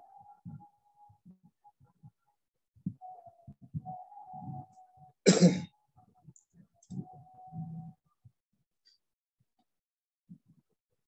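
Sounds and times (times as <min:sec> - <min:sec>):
person coughing: 0:05.3 - 0:05.7.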